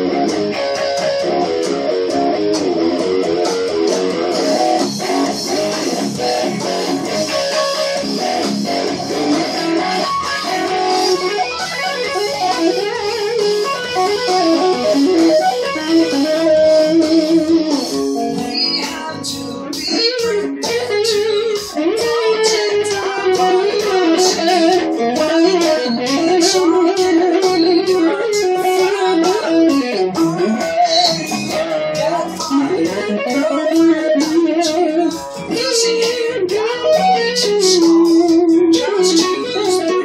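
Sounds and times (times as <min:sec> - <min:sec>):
electric guitar melody: 0:00.0 - 0:40.0.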